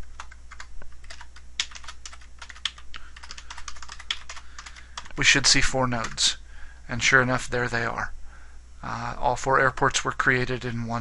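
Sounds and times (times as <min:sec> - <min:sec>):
typing on computer keyboard: 0:00.1 - 0:05.2.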